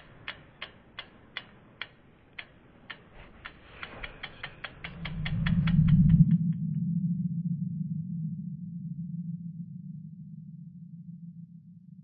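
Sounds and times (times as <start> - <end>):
sharp ticks speeding up: 0.0 - 6.4
low hum: 3.9 - 12.0.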